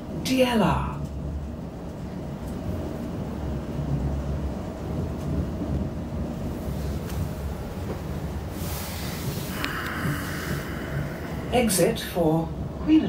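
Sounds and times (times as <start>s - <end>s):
train wheels rumbling on track: 0.0s - 13.0s
faint steady hum: 7.8s - 13.0s.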